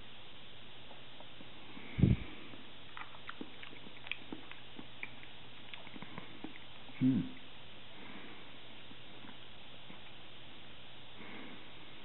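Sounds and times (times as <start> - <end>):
wet mouth clicks: 2.5 - 7.5.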